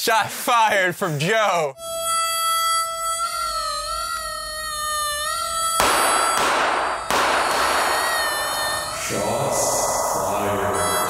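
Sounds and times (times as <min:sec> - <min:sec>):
wavering whistle-like tone: 0:01.8 - 0:11.0.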